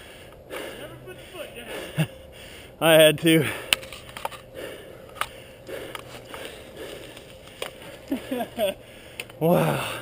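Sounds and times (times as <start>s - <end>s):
bike clicks and rattles: 3.7s - 9.4s
bike tyres rolling over dirt: 6.0s - 10.0s.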